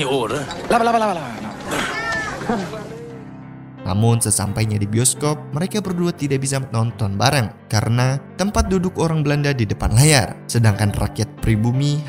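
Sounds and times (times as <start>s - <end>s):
men speaking: 0.0s - 1.8s, 3.8s - 12.0s.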